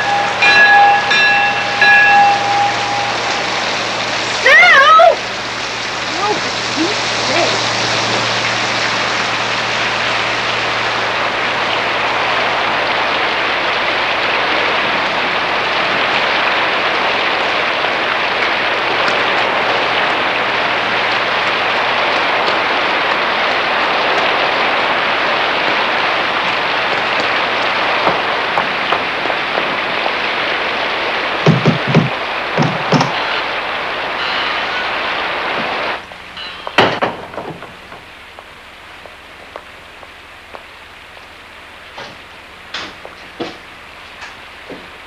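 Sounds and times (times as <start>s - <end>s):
low hum: 0.0s - 4.5s
heavy rain pouring: 0.0s - 45.0s.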